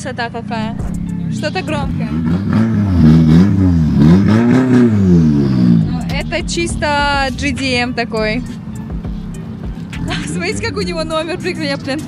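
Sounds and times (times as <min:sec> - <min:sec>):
car engine revving: 0:00.6 - 0:12.0.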